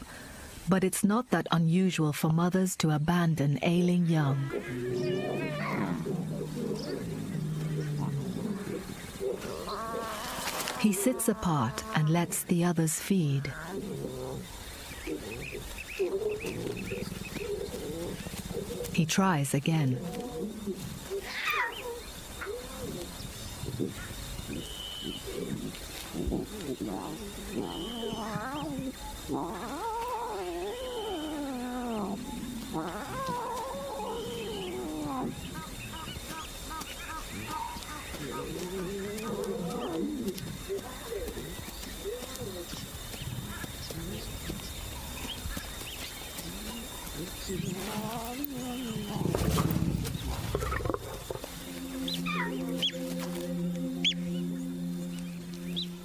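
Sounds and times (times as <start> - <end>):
lion cub mewing: 4.2 - 19.2, 19.8 - 53.2
lion growl: 4.3 - 12.4, 13.3 - 19.2, 19.8 - 55.8
music: 51.0 - 56.0.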